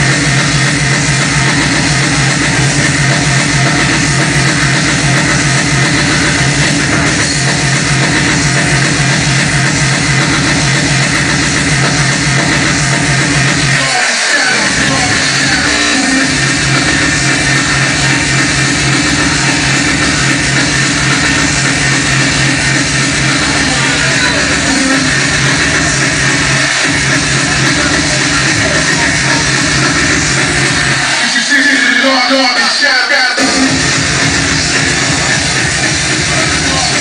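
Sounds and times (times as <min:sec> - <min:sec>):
heavy kick drum: 0:00.0 - 0:13.8, 0:14.5 - 0:31.2, 0:33.4 - 0:37.0
distorted industrial electronic music: 0:00.0 - 0:37.0.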